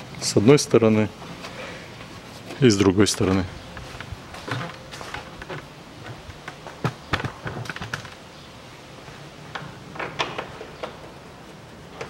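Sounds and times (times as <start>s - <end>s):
bolts clicking and knocking: 2.8s - 8.3s, 9.5s - 11.2s.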